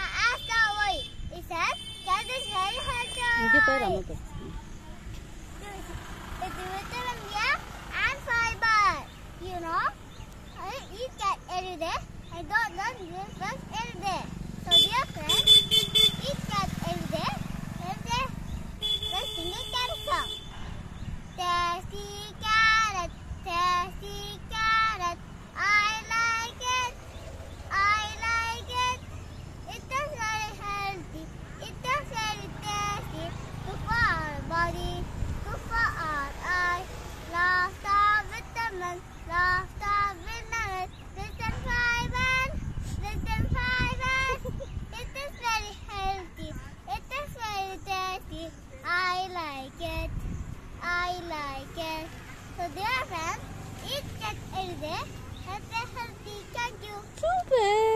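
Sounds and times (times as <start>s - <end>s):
boy singing: 21.3s - 27.0s, 27.7s - 29.0s, 29.7s - 50.1s.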